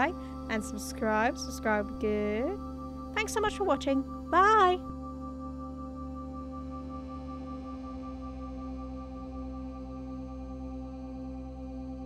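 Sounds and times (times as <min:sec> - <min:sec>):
droning held tones: 0:00.0 - 0:12.0.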